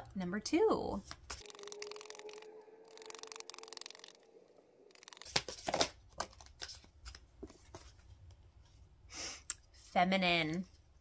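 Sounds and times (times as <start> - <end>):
cards shuffling: 4.9 - 7.9.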